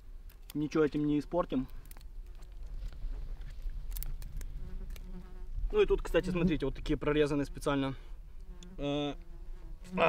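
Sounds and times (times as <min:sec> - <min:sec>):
dry twigs breaking: 0:00.2 - 0:05.1
flying insect buzzing: 0:02.2 - 0:06.7, 0:08.3 - 0:10.0.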